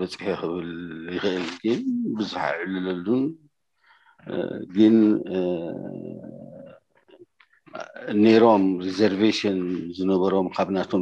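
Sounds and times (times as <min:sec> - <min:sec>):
man speaking: 0:00.0 - 0:03.4, 0:04.2 - 0:11.0
man's drawn-out hesitation sound: 0:00.0 - 0:03.4, 0:04.3 - 0:06.7.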